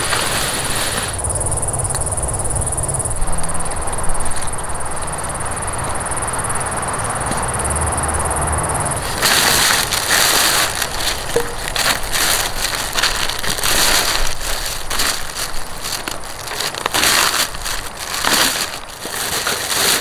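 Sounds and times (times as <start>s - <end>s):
plastic bag and wrappers crinkling: 9.0s - 20.0s.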